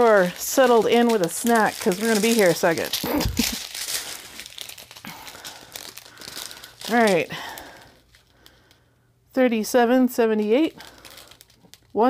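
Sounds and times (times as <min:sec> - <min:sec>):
plastic bags crinkling: 0:00.0 - 0:09.0, 0:10.2 - 0:12.0.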